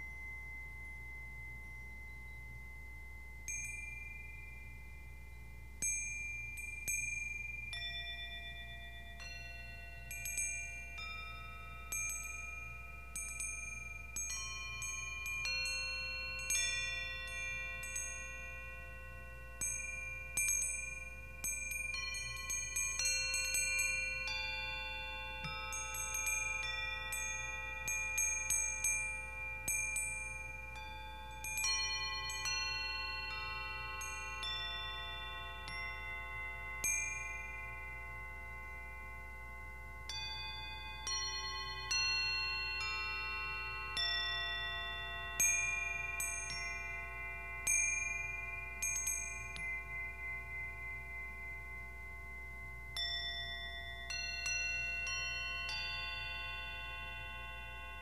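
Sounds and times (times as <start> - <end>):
metal chimes struck with mallet: 5.8 - 58.0.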